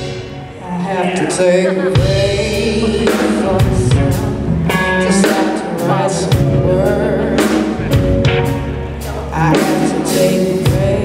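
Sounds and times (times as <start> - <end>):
live blues band: 0.0 - 11.0
woman singing: 0.6 - 7.8, 9.2 - 11.0.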